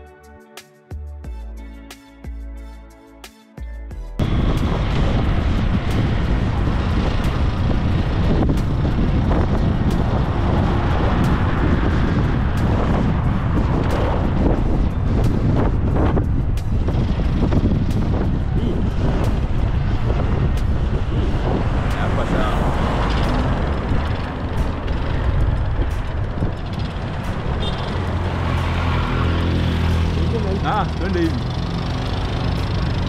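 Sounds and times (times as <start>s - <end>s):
cars and trucks passing: 4.2s - 33.0s
low engine drone: 4.2s - 33.0s.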